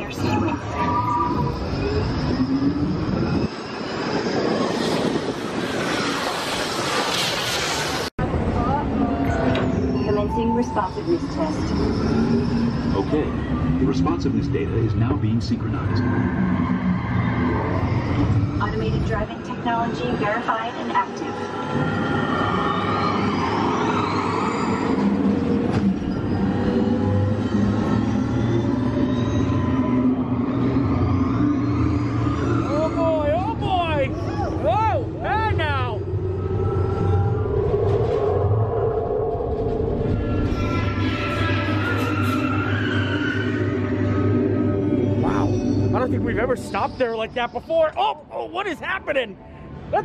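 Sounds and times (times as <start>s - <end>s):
warbling synthesized tones: 8.6s - 48.0s
rising electronic sweeps: 8.9s - 49.8s.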